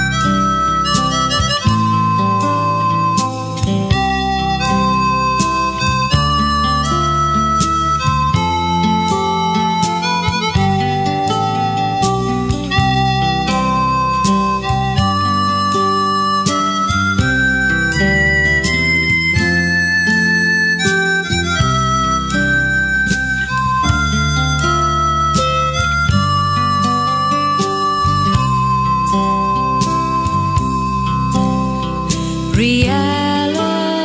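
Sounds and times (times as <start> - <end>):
band playing instrumental: 0.0 - 32.8.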